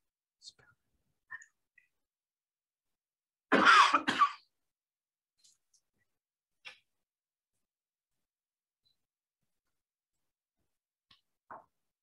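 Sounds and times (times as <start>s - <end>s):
person coughing: 3.5s - 4.5s.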